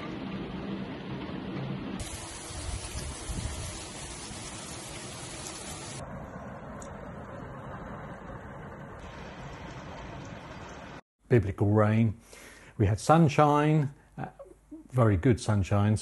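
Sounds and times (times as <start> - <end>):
heavy rain splashing on paving: 2.0 - 6.0.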